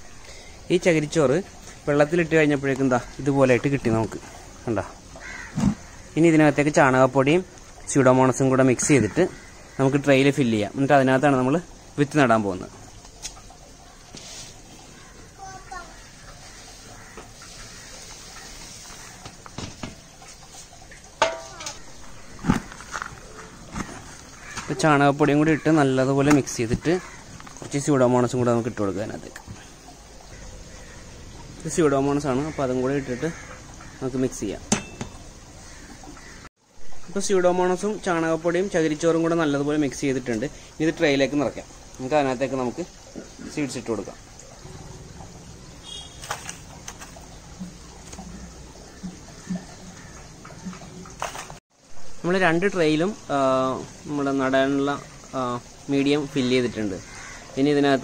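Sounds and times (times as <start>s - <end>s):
hand scraping potting soil: 22.2s - 24.7s.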